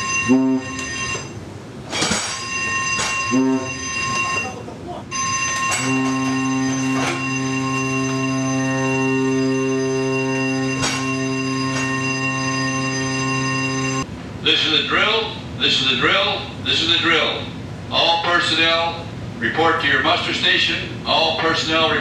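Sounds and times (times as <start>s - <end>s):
ship's horn blast: 0.0s - 1.4s, 2.6s - 14.0s
electric alarm bells ringing: 0.0s - 14.1s.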